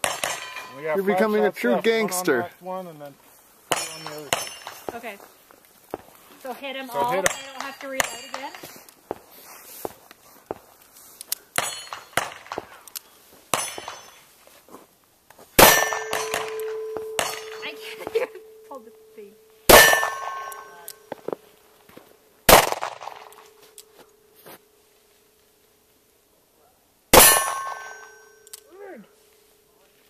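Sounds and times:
steel plate ringing: 0:00.0 - 0:01.3, 0:03.7 - 0:04.9, 0:07.1 - 0:08.7, 0:11.6 - 0:12.4, 0:15.6 - 0:21.3, 0:27.2 - 0:28.5.

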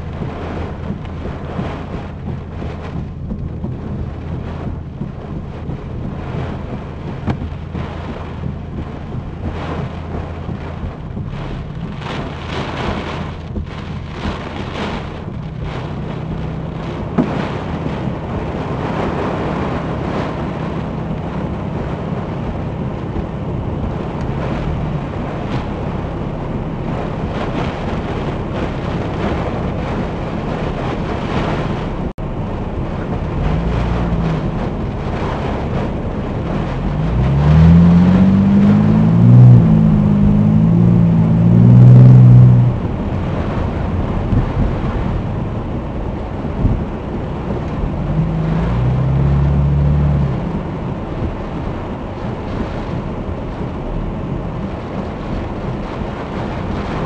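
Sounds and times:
car engine idling: 0:00.0 - 0:57.0
heavy rain on car: 0:00.0 - 0:57.0
strong winds buffeting car: 0:00.0 - 0:57.0.

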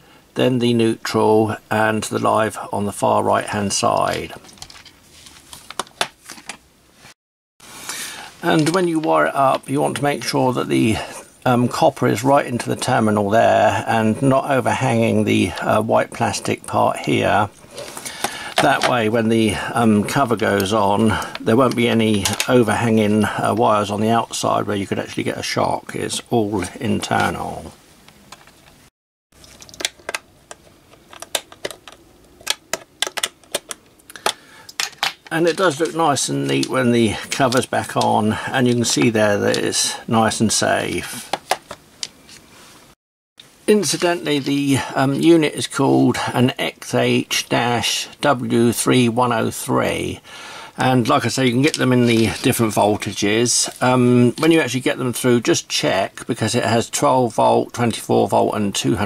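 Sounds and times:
plastic housing being handled: 0:20.6 - 0:22.5, 0:29.4 - 0:38.1, 0:41.2 - 0:42.4.

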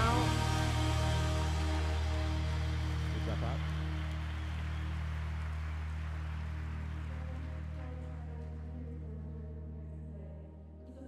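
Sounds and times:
worship band holding low chord: 0:00.0 - 0:11.0.

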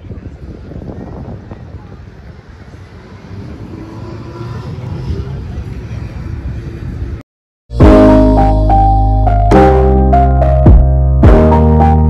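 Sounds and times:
faint voices of people: 0:00.0 - 0:03.1
low rumble of city noise: 0:00.0 - 0:07.2.

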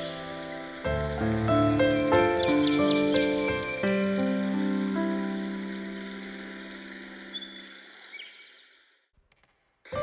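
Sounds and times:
piano chord: 0:00.0 - 0:06.8
piano piece: 0:00.0 - 0:07.7
bird chirps: 0:00.0 - 0:09.0.

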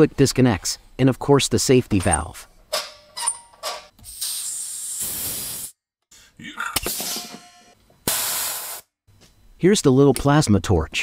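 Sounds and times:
compressed air hissing from valve: 0:04.0 - 0:05.8, 0:08.1 - 0:08.9.

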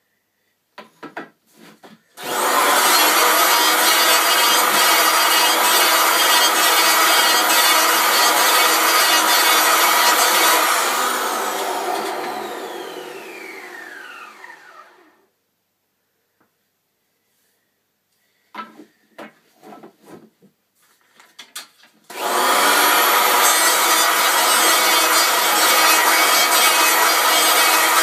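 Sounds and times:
electric power planer running: 0:02.2 - 0:15.2, 0:22.1 - 0:28.0.

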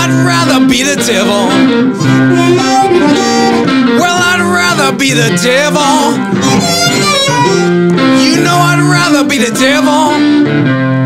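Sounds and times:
amplified blues harmonica: 0:00.0 - 0:11.0
electric guitar accompaniment: 0:00.0 - 0:11.0.

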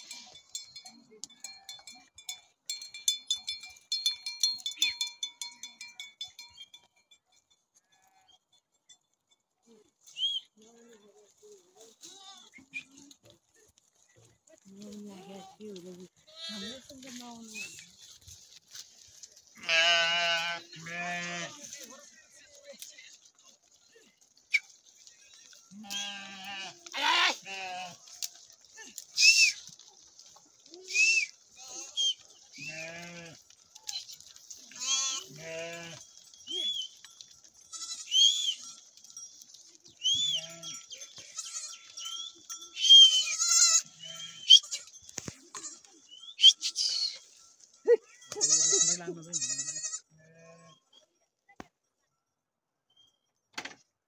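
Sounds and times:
sheep and goats bleating: 0:00.0 - 0:06.8, 0:07.7 - 0:08.6, 0:10.5 - 0:13.4, 0:14.2 - 0:51.0.

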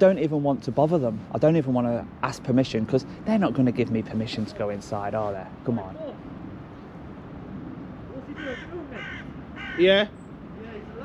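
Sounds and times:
bird calling: 0:08.1 - 0:10.4.

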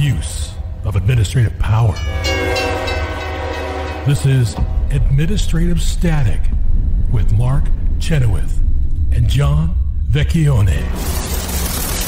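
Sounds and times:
low steady hum: 0:00.0 - 0:12.0
sustained horn-like chord: 0:02.0 - 0:04.9.

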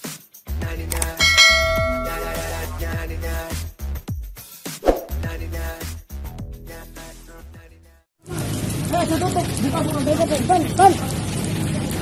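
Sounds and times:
notification bell chime: 0:01.2 - 0:02.7.

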